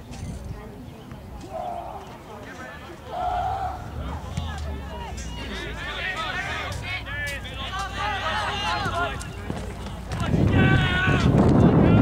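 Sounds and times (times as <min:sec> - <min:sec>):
distant people shouting: 0:01.5 - 0:12.0
steady low rumble: 0:03.1 - 0:12.0.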